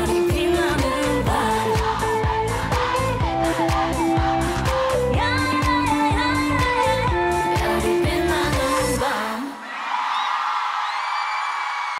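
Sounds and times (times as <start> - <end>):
pop song with female vocals: 0.0 - 9.7
audience cheering and screaming: 9.6 - 11.9.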